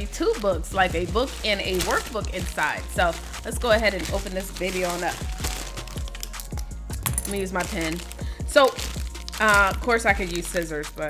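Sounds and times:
background music with beat: 0.0s - 11.0s
plastic mailer bag crinkling: 0.0s - 11.0s.

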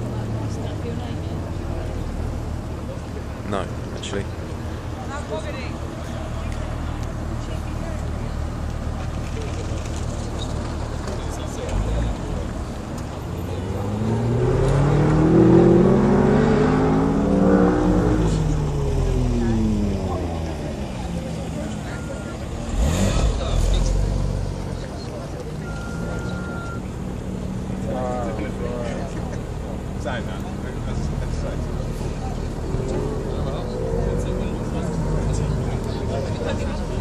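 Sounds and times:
sports car engine accelerating: 8.5s - 37.0s.

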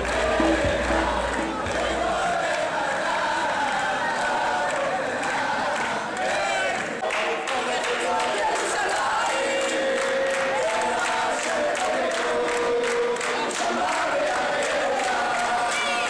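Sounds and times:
hands clapping along: 0.0s - 3.4s, 4.2s - 16.0s
men singing in unison: 0.0s - 6.2s, 7.1s - 16.0s.

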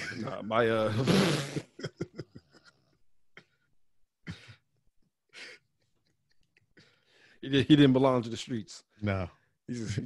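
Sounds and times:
laughter: 0.9s - 3.6s
man coughing: 4.2s - 4.6s.

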